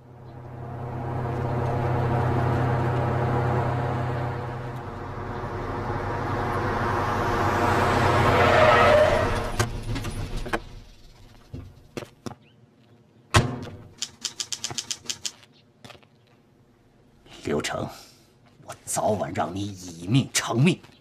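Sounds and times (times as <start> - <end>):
truck engine running: 0.0 - 11.5.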